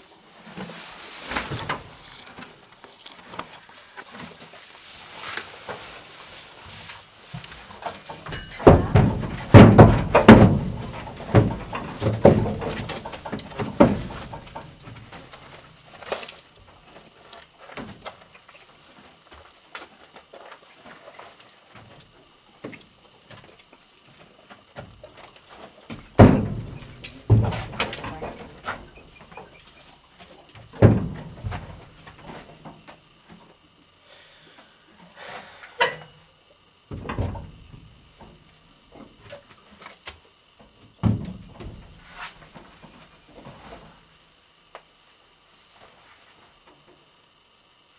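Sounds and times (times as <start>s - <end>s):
horse hooves on trailer floor: 4.0s - 16.1s, 24.2s - 29.8s.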